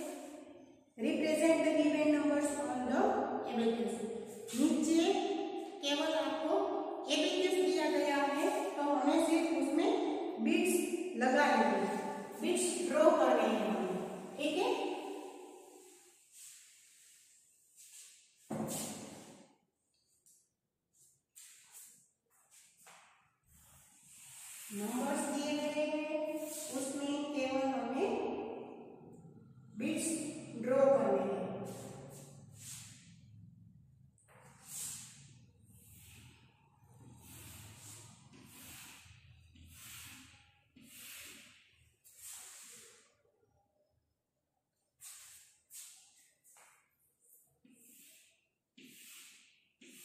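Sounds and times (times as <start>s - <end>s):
cloth wiping a chalkboard: 15.6s - 19.5s, 20.1s - 25.6s, 26.3s - 27.3s, 31.6s - 33.3s, 34.2s - 43.2s, 44.8s - 50.0s.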